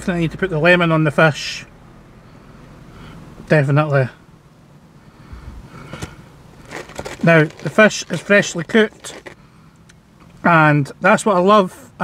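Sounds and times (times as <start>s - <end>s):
faint rustling: 5.8s - 9.4s.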